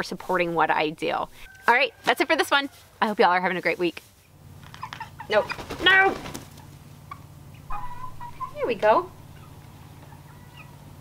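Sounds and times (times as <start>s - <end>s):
hen clucking: 4.7s - 11.0s.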